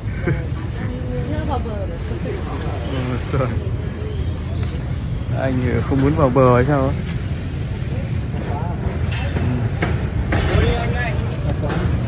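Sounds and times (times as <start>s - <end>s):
low street background rumble: 0.0s - 12.0s.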